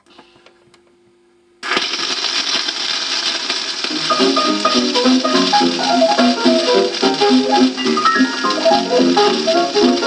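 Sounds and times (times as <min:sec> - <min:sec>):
record surface hiss and crackle: 0:00.0 - 0:10.0
record needle ticks: 0:03.5 - 0:10.0.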